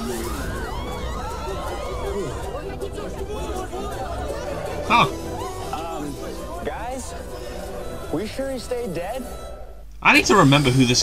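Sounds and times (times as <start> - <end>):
indistinct chatter of voices: 0.0 - 11.0.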